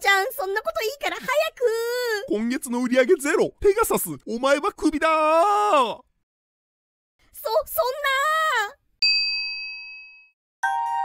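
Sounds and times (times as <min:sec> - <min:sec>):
bright bell ding: 0:09.0 - 0:11.0
chiming music: 0:09.0 - 0:11.0.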